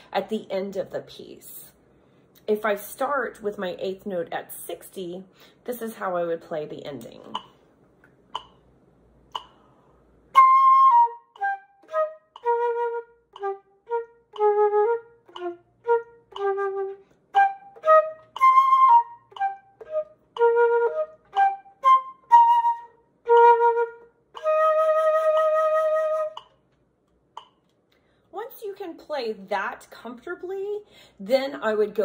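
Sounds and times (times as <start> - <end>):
flute playing: 10.3 - 26.6.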